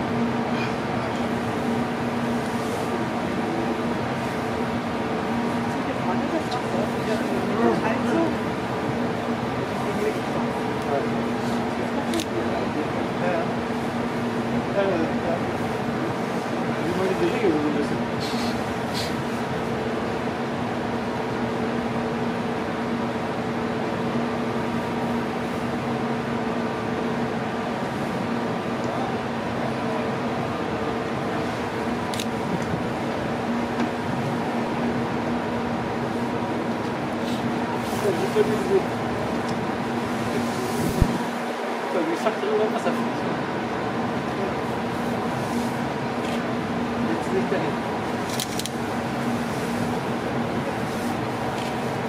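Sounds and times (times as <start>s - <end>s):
ship engines humming: 0.0s - 52.0s.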